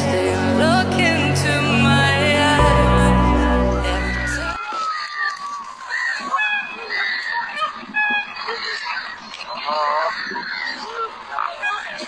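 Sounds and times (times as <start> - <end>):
person's voice: 0.0 - 4.6.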